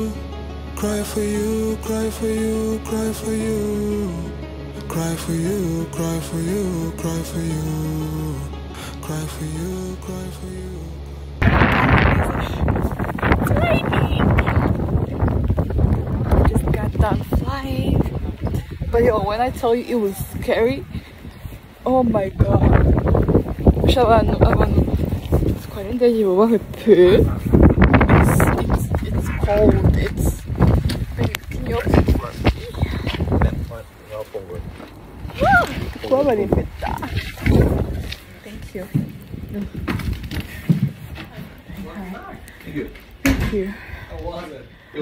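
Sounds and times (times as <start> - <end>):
wind buffeting microphone: 11.4 - 44.8.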